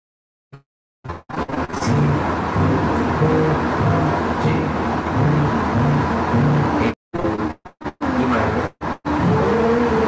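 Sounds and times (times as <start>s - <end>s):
background music: 2.0s - 6.9s
voices: 6.8s - 10.0s.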